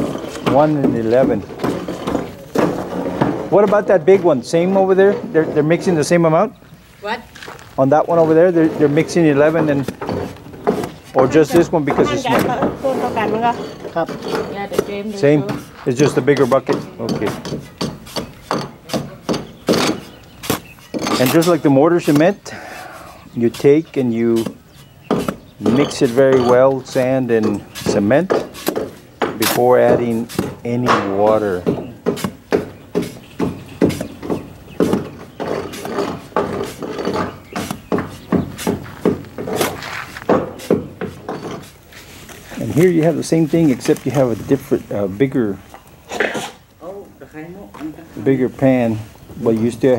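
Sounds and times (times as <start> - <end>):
tool scraping through dry sand: 7.3 - 32.4, 33.0 - 46.6.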